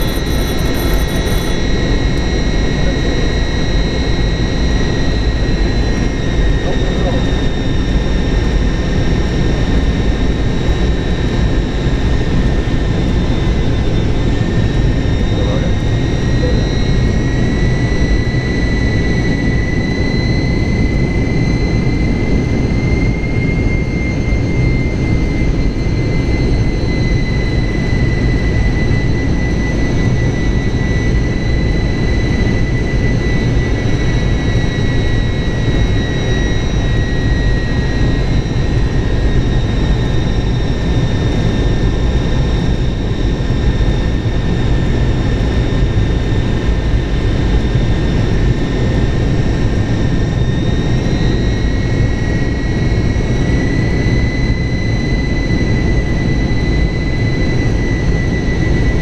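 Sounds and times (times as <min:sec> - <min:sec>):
jet engines rumbling and whining: 0:00.0 - 0:59.0.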